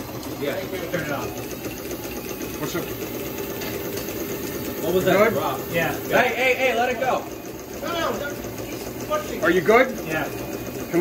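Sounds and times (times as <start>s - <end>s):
model steam engine clattering: 0.4s - 11.0s.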